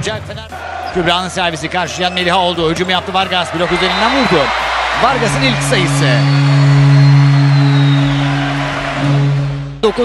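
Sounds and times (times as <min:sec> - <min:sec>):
loud low held note: 0:05.1 - 0:09.8.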